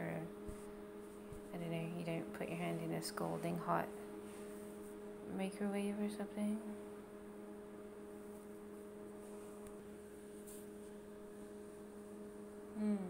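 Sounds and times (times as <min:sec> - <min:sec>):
microwave cooling fan hum: 0:00.0 - 0:13.0.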